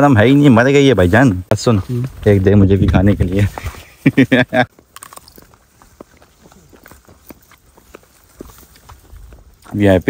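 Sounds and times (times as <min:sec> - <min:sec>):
footsteps on dry ground: 0:00.0 - 0:10.0.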